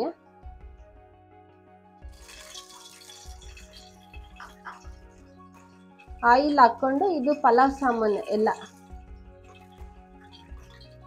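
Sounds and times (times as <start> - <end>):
oil splashing into a pot: 2.0 - 11.0.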